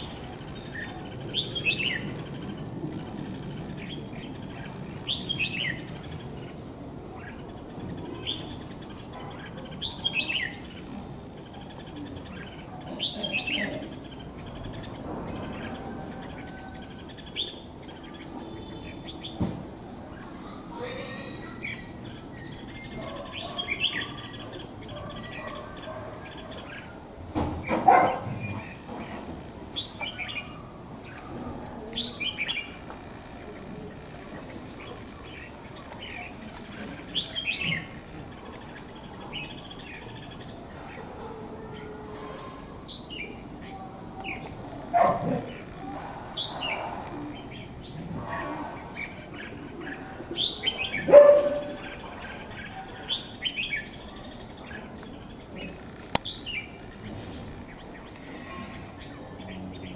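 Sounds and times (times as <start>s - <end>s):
birds chirping: 0.0s - 59.9s.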